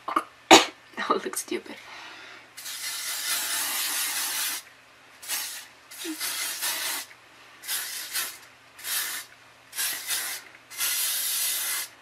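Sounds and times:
aerosol spray hissing: 0:02.6 - 0:04.6, 0:05.2 - 0:12.0.

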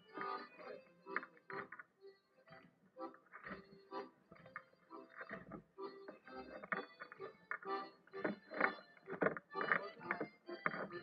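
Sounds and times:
creaks and rattles of a figure: 0:07.6 - 0:11.0.

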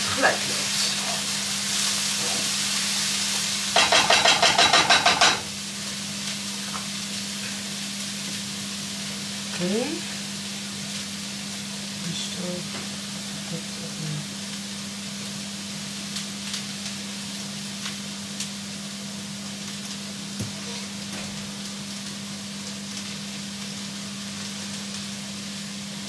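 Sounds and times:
gas burner low hum: 0:00.0 - 0:26.0
water heating with steady hiss: 0:00.0 - 0:26.0.

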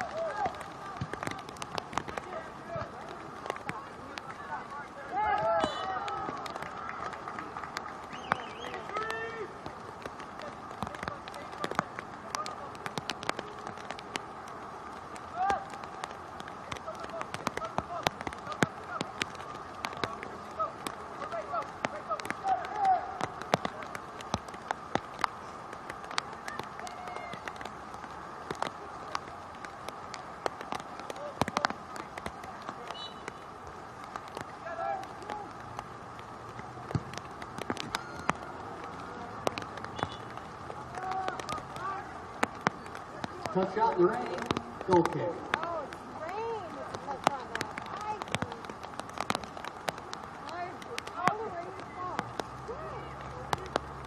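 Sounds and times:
distant players shouting: 0:00.0 - 0:54.0.

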